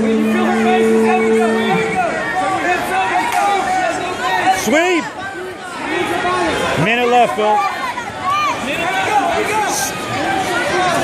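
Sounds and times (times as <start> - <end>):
steady pitched tone: 0.0 - 2.8
crowd chatter: 0.0 - 11.0.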